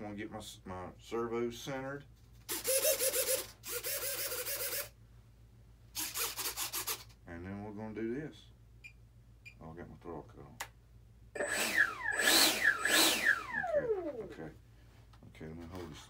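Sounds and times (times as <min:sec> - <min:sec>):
servos buzzing: 0:02.5 - 0:05.0, 0:11.4 - 0:14.4.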